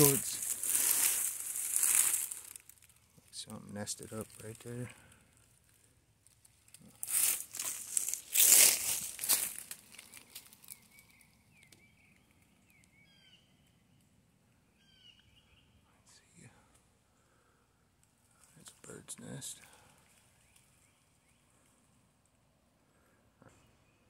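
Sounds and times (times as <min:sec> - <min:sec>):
faint rustle: 0:00.0 - 0:11.2
pine straw and leaves crunching: 0:00.0 - 0:11.7
small bird chirping: 0:09.8 - 0:16.2.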